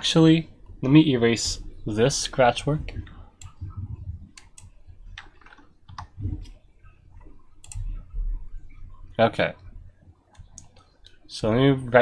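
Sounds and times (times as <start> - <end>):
soft low thumps: 2.6 - 5.2, 5.9 - 10.0
mouse clicks: 7.2 - 8.0.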